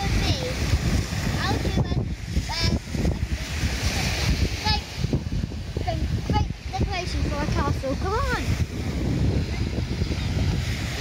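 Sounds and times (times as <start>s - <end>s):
small waves breaking on beach: 0.0s - 11.0s
wind buffeting microphone: 0.0s - 11.0s.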